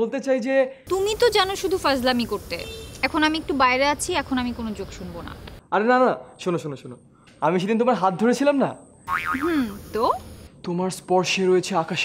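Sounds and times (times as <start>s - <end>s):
comic boing sound effect: 9.1s - 9.7s.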